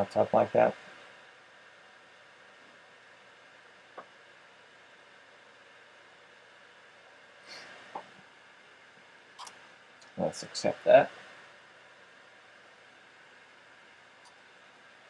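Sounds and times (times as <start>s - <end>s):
laptop cooling fan hissing: 0.0s - 15.0s.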